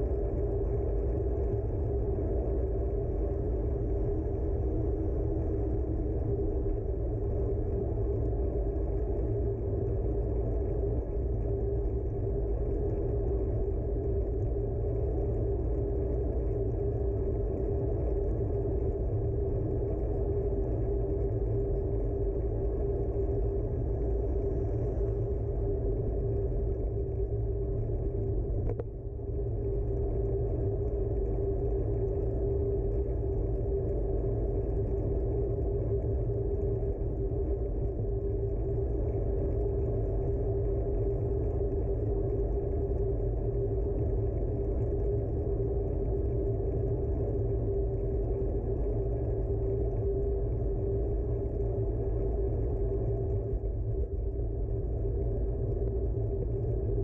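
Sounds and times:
steady hum: 0.0 - 57.0.

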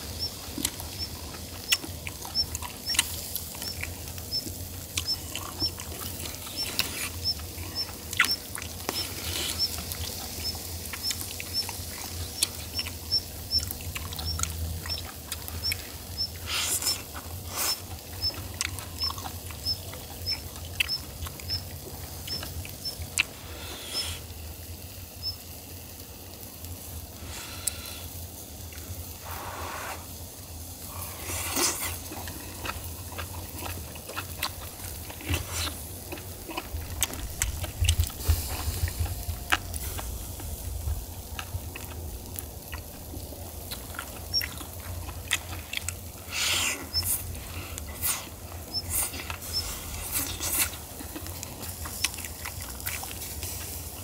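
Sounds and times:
wet chewing and slurping: 0.0 - 24.9, 27.1 - 54.0.

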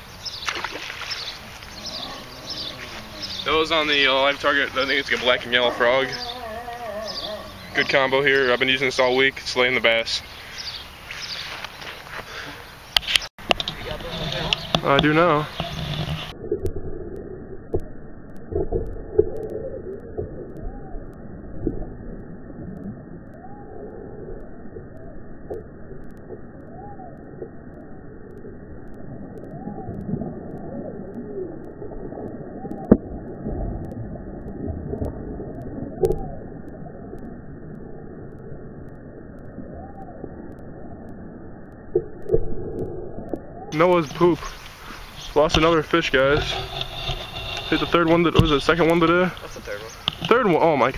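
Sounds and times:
slowed watery sloshing and splashing: 0.0 - 8.3, 13.4 - 50.9
slow wavering tones: 1.4 - 9.0.

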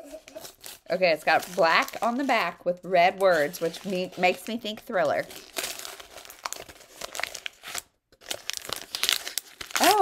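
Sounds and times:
wrapping paper tearing and crumpling: 0.1 - 10.0.

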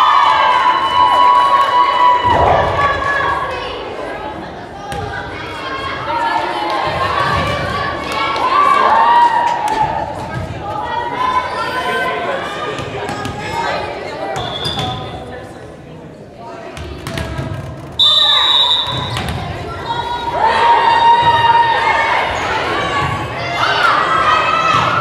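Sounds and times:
players shouting: 0.0 - 4.3, 18.0 - 25.0
short high whistle: 18.0 - 19.2.

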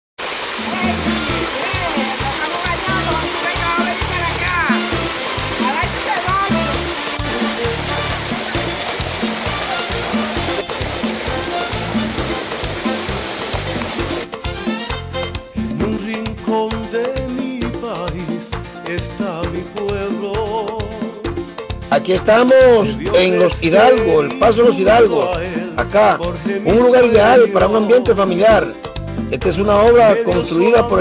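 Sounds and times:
waterfall pouring into pool: 0.2 - 14.3
voices: 0.7 - 5.0, 5.6 - 6.8, 29.4 - 31.0
music with bass beat: 0.7 - 22.0.

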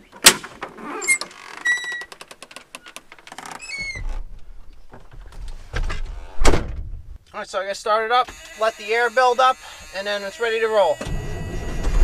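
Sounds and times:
truck door hinge squeaking: 0.9 - 2.2, 10.8 - 12.0.

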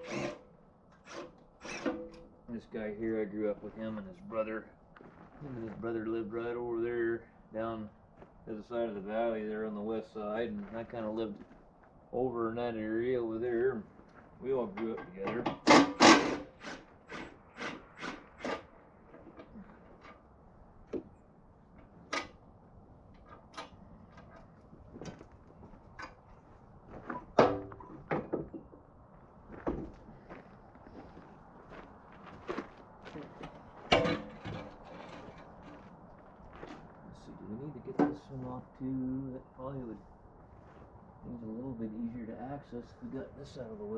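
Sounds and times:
metal clanks: 14.8 - 20.2, 33.4 - 35.6.

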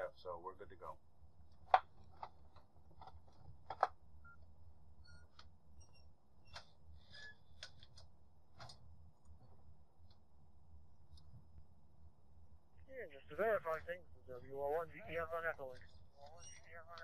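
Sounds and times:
low steady hum: 0.0 - 17.0.

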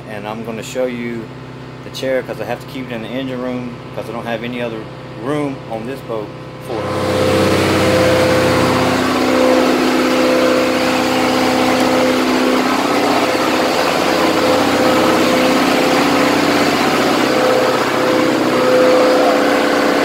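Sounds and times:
boat engine droning: 4.4 - 20.0.

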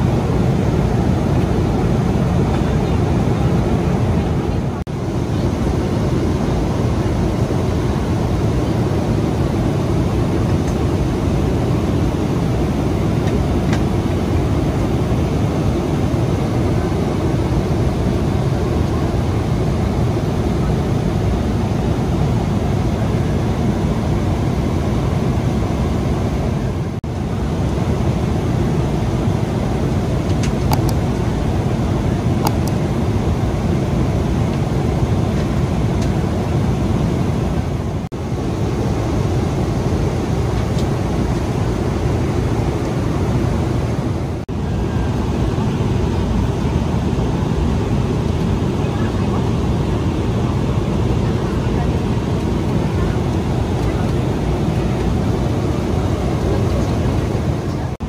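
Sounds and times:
airliner cabin engine rush: 0.0 - 58.0.

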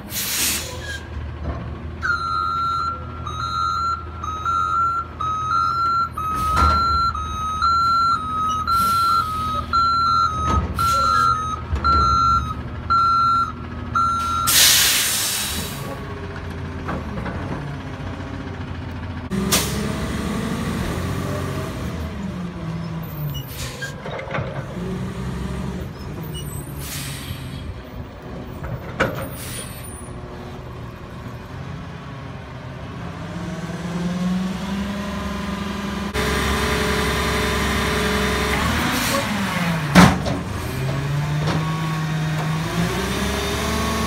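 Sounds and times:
air brake hiss: 0.0 - 1.0, 14.5 - 15.9, 26.7 - 27.7, 29.3 - 29.9
garbage truck diesel engine running: 0.0 - 44.0
reverse alarm beeping: 2.0 - 14.8.

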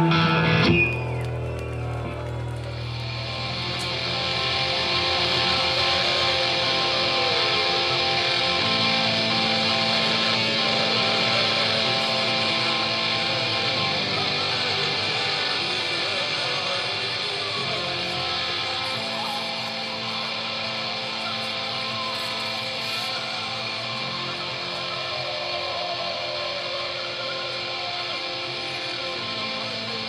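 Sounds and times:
distorted electric guitar notes ringing: 0.0 - 30.0
amplifier distortion hiss: 2.8 - 30.0.

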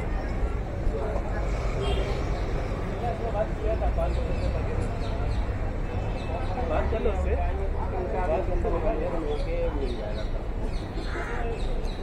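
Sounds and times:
indistinct voices of passers-by: 0.0 - 12.0
low rumble of city traffic: 0.0 - 12.0.

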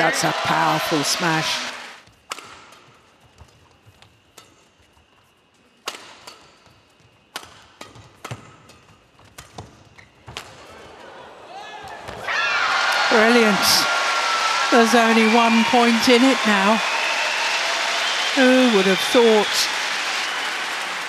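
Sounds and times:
rackets striking shuttlecock: 2.3 - 3.0, 5.8 - 6.7, 7.3 - 9.7.

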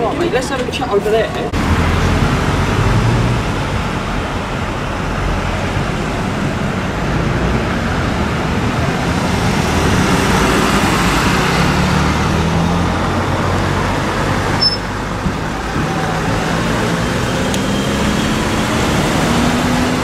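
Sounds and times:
street traffic: 0.0 - 20.0
ambulance engine droning: 1.5 - 20.0.

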